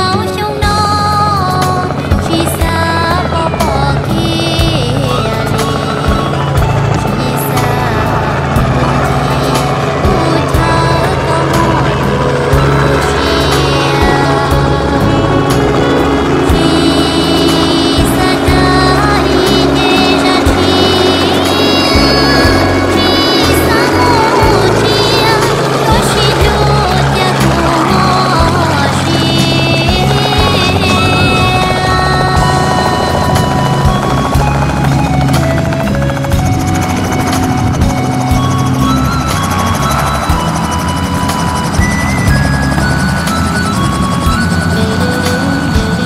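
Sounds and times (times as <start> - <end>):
helicopter engine and rotor: 0.0 - 46.0
music playing: 0.0 - 46.0.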